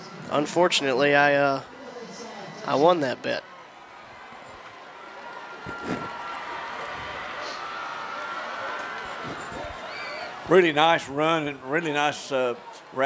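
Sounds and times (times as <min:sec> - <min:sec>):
stadium crowd noise: 0:00.0 - 0:13.0.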